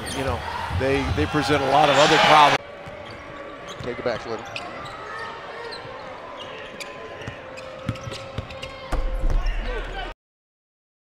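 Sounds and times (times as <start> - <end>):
crowd noise: 0.0 - 10.2.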